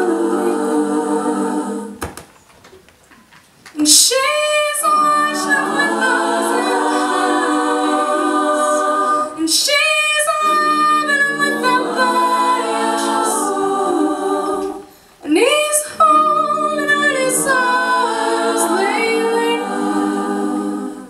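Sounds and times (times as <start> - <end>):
women singing a cappella harmony: 0.0 - 2.0, 3.8 - 21.0.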